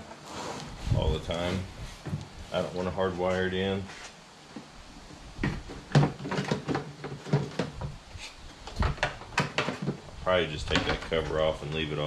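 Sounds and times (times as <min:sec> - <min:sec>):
hard plastic knocks and rattles: 0:05.4 - 0:08.0, 0:08.6 - 0:11.8.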